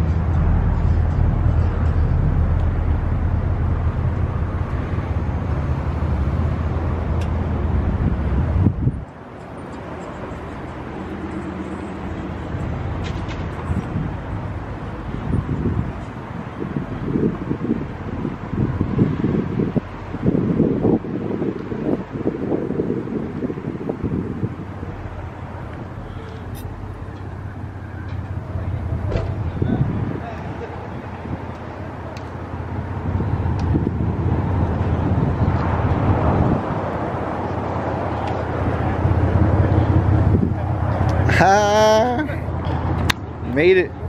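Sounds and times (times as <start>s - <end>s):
wind buffeting the microphone: 0.0s - 10.8s, 12.1s - 41.4s
vehicles idling hum: 0.0s - 44.0s.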